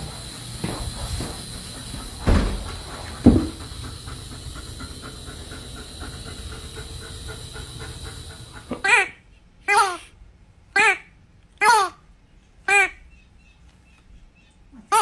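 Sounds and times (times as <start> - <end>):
hair dryer blowing: 0.0 - 8.8
thumps: 0.6 - 4.1.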